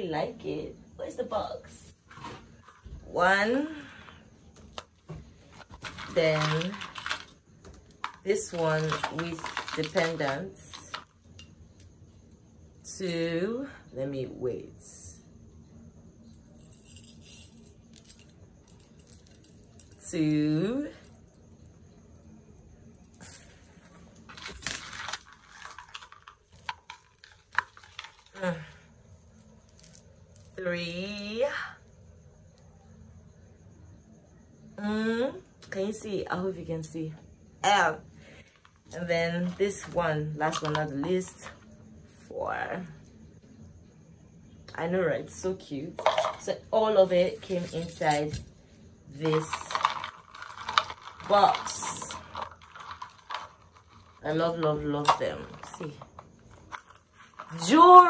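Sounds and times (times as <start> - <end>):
plastic packaging rustling: 5.4 - 7.3, 8.0 - 11.0, 24.3 - 28.4, 49.5 - 54.2
metal chain clinking: 5.6 - 11.5, 16.3 - 21.2, 23.8 - 28.6, 49.2 - 58.0.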